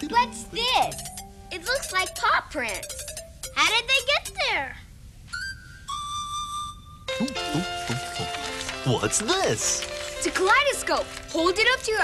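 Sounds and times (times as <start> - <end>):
held whistle-like notes: 5.3 - 8.3.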